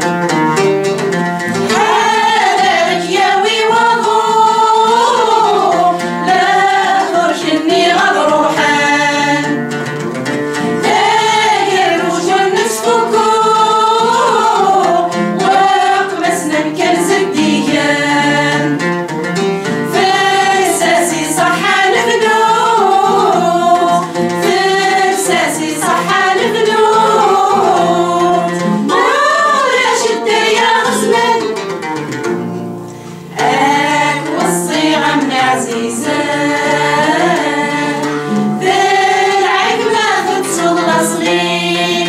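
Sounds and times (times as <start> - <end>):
women singing together: 1.5 - 9.9, 10.5 - 19.0, 19.6 - 31.8, 33.3 - 42.0.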